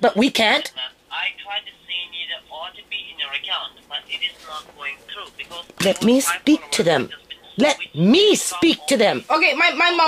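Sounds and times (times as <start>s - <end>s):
person talking over speakerphone: 0.0s - 10.0s.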